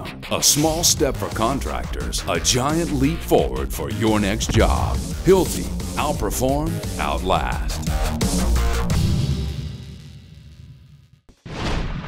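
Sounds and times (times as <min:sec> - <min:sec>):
music: 0:00.0 - 0:11.4.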